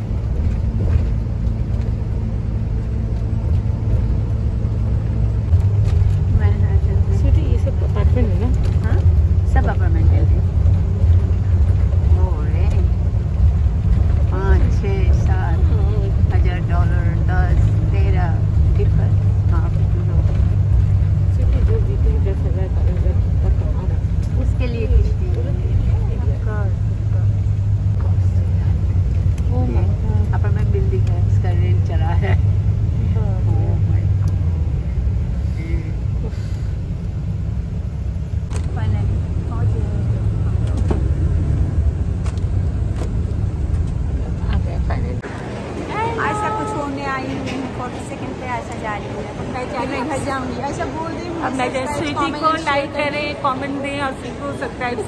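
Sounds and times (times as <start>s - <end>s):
bus engine and road rumble: 0.0s - 55.0s
passengers' voices: 4.7s - 55.0s.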